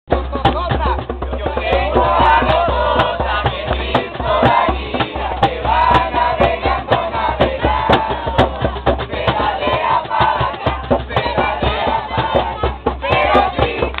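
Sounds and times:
young voices singing together: 1.5s - 14.0s.

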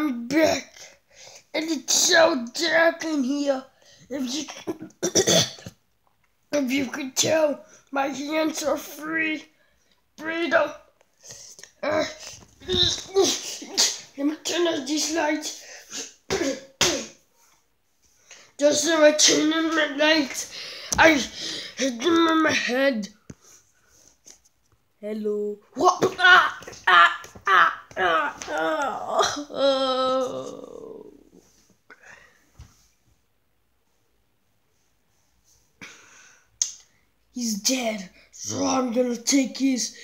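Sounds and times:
person coughing: 4.6s - 5.7s, 15.9s - 17.2s
boy making vocal noises: 11.5s - 17.2s, 18.6s - 23.2s, 25.2s - 31.4s.

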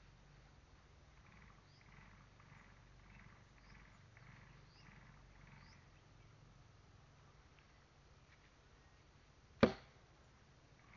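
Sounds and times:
low steady hum: 0.0s - 10.9s.

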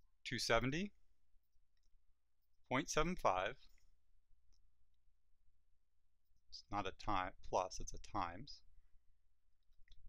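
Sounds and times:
man speaking: 0.2s - 1.0s, 2.7s - 3.7s, 6.5s - 8.7s.

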